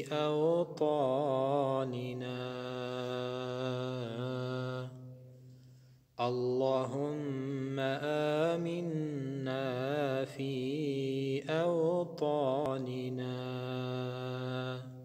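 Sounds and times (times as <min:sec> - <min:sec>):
man chanting melodically: 0:00.0 - 0:04.9, 0:06.2 - 0:15.0.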